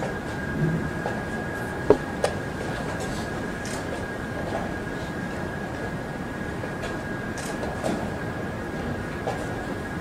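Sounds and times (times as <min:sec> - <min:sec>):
large hall background noise: 0:00.0 - 0:10.0.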